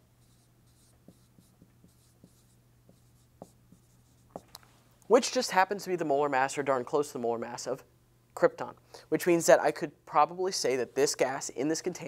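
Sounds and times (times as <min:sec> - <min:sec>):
marker scratching on whiteboard: 0:00.0 - 0:04.5
marker tapping on whiteboard: 0:00.2 - 0:04.5.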